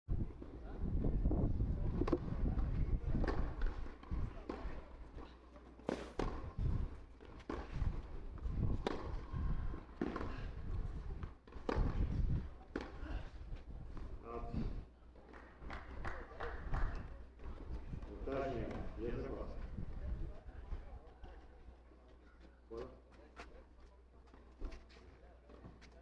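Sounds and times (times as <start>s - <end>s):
racket hitting tennis ball: 3.2s - 13.3s.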